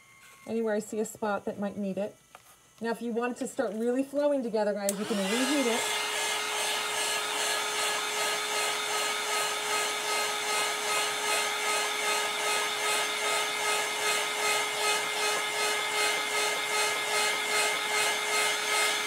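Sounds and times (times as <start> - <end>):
heat gun blowing: 4.8 - 19.0.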